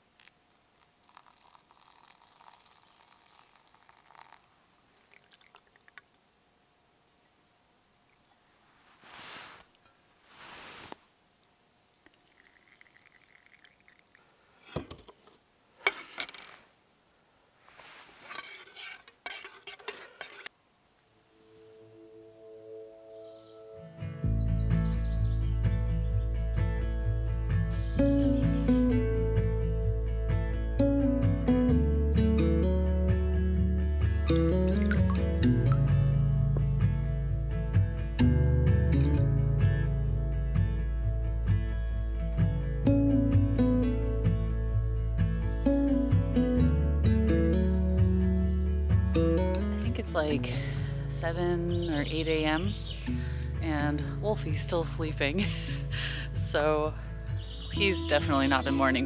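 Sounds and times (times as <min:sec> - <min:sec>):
liquid pouring: 0:00.2 - 0:06.1, 0:11.4 - 0:14.2, 0:34.7 - 0:35.3
metal cookware clinking: 0:18.3 - 0:20.5
background music: 0:21.4 - 0:59.0.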